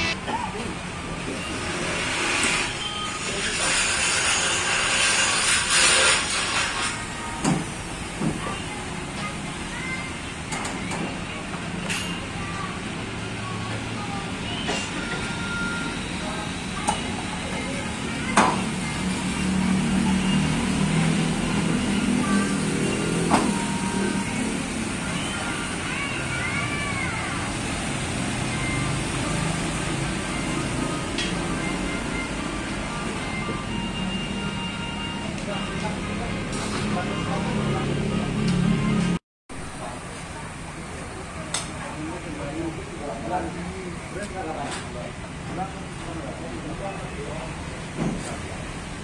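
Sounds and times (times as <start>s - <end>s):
vehicle engine humming: 0.0s - 2.0s, 7.0s - 49.0s
road traffic hiss: 0.0s - 49.0s.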